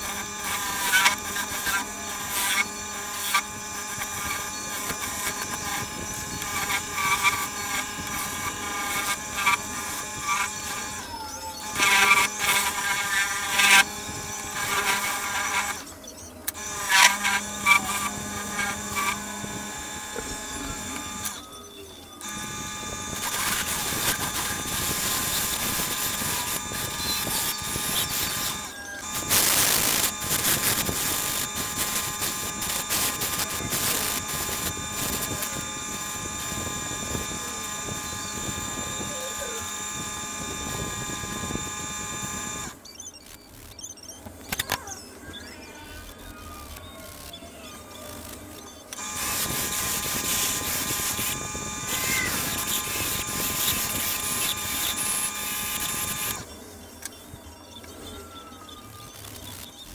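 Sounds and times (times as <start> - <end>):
wood lathe running: 0.0 - 15.9, 16.5 - 21.4, 22.2 - 42.8, 48.9 - 56.5
turning tool cutting wood: 0.0 - 21.5, 22.2 - 43.8, 46.7 - 56.6.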